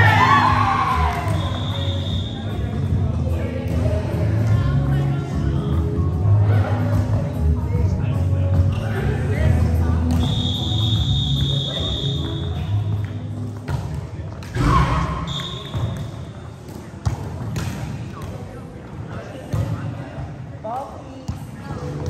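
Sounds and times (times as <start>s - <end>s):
players' voices: 0.0s - 22.0s.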